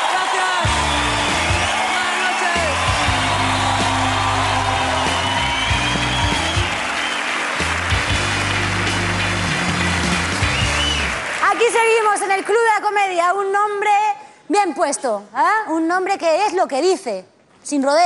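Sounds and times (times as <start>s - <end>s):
audience applauding: 0.0s - 12.7s
music with steady bass line: 0.7s - 1.9s, 2.6s - 11.2s.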